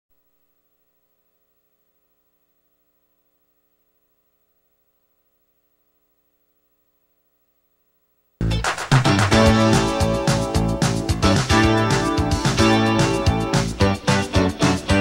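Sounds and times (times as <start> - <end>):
faint electrical hum: 0.1 - 8.5.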